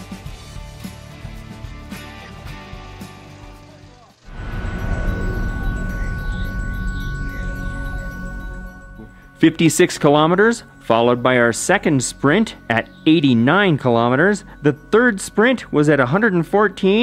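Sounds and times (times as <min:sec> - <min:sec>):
background music: 0:00.0 - 0:17.0
bass-heavy title music with sweeps: 0:04.3 - 0:11.2.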